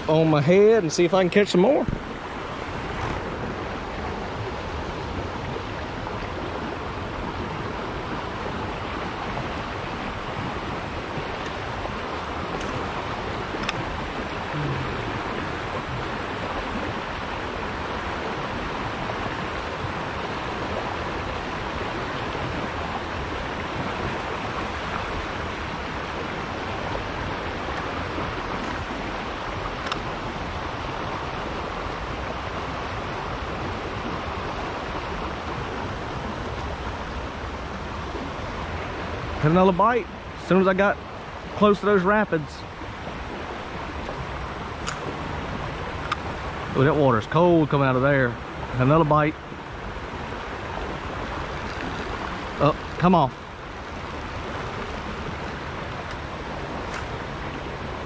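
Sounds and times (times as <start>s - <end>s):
water rushing over rocks: 0.0s - 58.0s.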